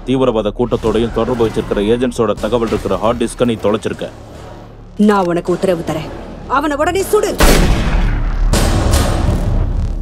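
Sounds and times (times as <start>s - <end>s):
rifle shot: 7.4s - 9.9s.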